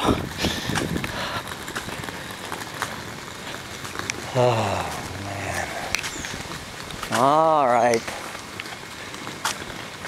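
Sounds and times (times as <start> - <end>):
footsteps on a road: 0.0 - 10.0
steady outdoor hiss: 0.0 - 10.0.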